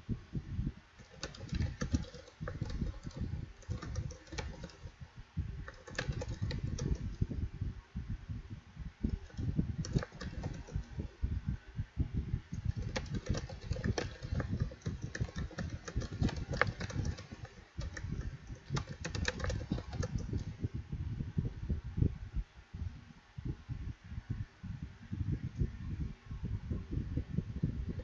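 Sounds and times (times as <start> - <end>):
typing on a computer keyboard: 1.0 - 4.9, 5.6 - 7.2, 9.1 - 10.9, 12.6 - 20.5.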